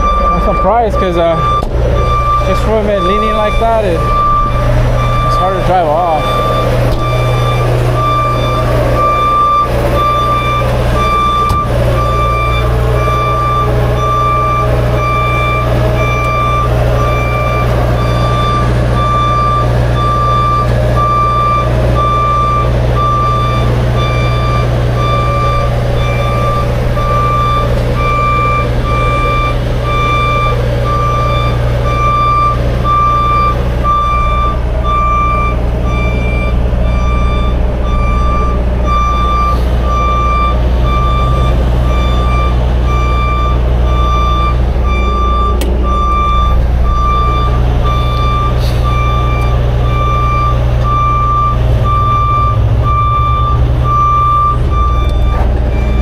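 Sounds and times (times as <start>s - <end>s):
diesel truck engine running: 0.0s - 56.0s
vehicle backup alarm beeping: 0.0s - 56.0s.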